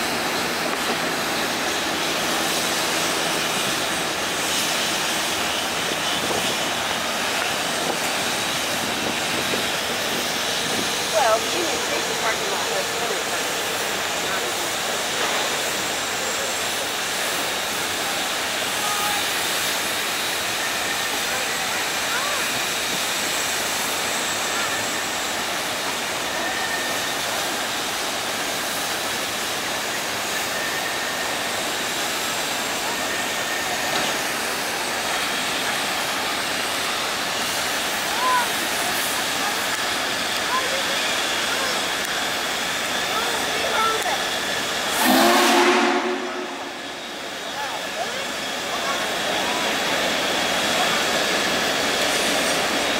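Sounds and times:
steam locomotive hissing: 0:00.0 - 0:52.9
train horn blast: 0:44.9 - 0:47.0.

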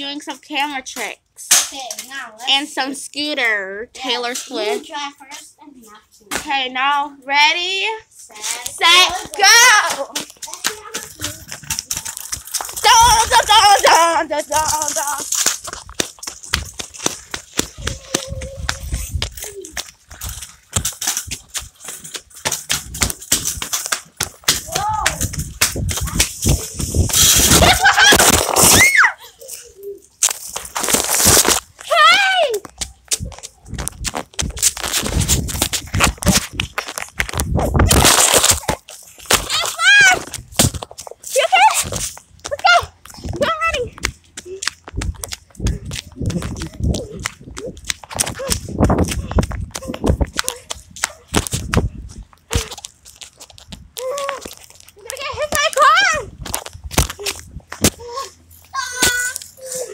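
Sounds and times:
scooter wheels clicking and knocking: 0:08.3 - 0:59.9
voices calling out: 0:17.5 - 0:20.1
wind gusts on microphone: 0:24.9 - 0:28.0, 0:33.2 - 0:38.2, 0:44.9 - 0:52.3.

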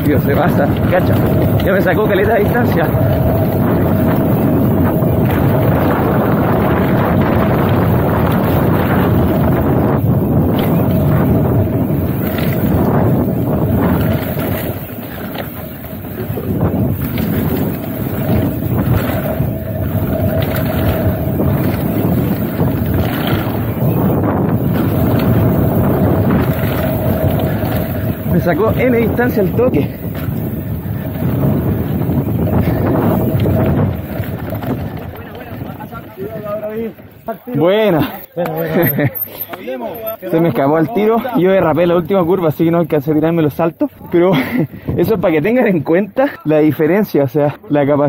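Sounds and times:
bike knocking and rattling: 0:00.0 - 0:45.9
wind rushing over microphone: 0:00.0 - 0:47.2.

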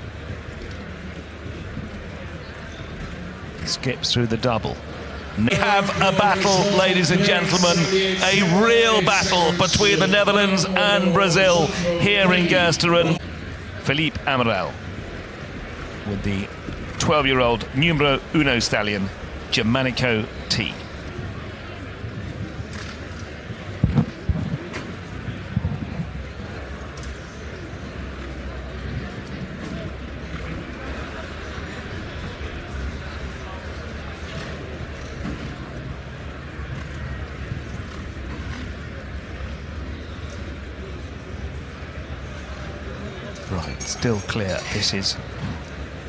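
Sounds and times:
murmur of spectators: 0:00.0 - 0:46.0.

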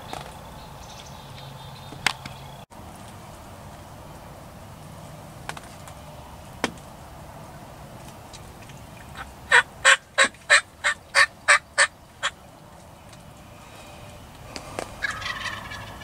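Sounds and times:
soft rough turkey call: 0:09.0 - 0:12.4, 0:13.5 - 0:16.0
turkey yelping: 0:09.1 - 0:12.4, 0:15.0 - 0:16.0.

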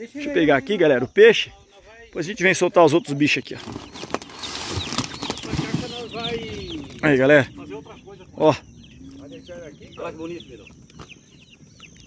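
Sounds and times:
plastic bag crinkling: 0:03.6 - 0:07.0.

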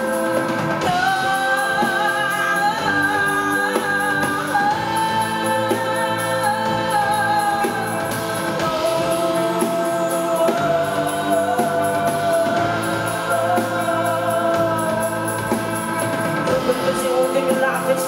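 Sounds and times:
band playing a steady beat: 0:00.0 - 0:18.0
woman singing: 0:00.0 - 0:18.0.

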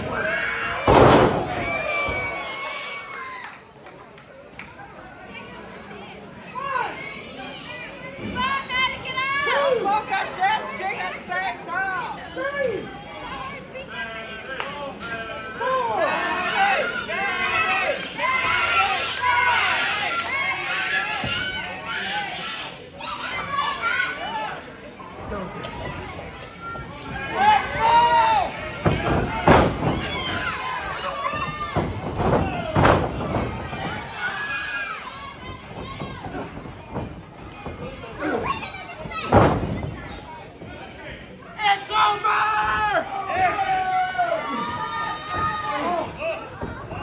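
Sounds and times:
children yelling and cheering: 0:29.3 - 0:36.6, 0:41.9 - 0:47.0
children's voices: 0:37.6 - 0:40.6.

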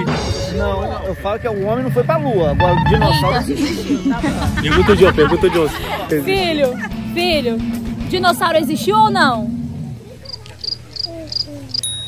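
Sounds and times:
cricket chirping: 0:10.2 - 0:12.0.

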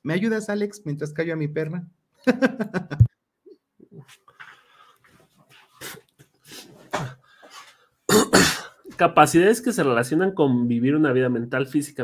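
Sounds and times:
loud cough: 0:08.1 - 0:08.8.

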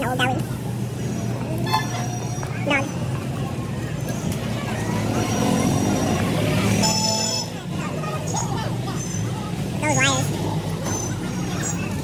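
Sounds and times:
road noise: 0:00.0 - 0:12.0
street traffic: 0:00.0 - 0:12.0
voices: 0:00.0 - 0:12.0.

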